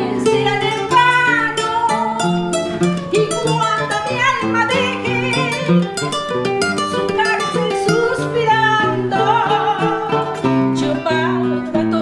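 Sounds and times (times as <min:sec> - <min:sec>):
acoustic guitar: 0:00.0 - 0:12.0
requinto guitar: 0:00.0 - 0:12.0
woman singing with vibrato: 0:00.0 - 0:12.0.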